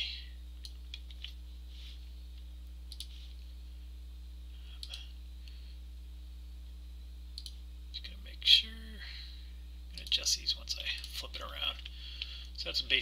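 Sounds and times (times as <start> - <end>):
low electrical hum: 0.0 - 13.0
computer mouse clicks: 2.9 - 3.2, 4.8 - 5.0, 7.4 - 7.6, 10.0 - 10.2.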